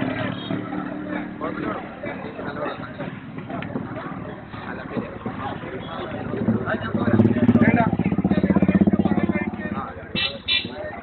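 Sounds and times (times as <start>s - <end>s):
vehicle engine passing: 6.1s - 10.0s
vehicle horn toots: 10.2s - 10.8s.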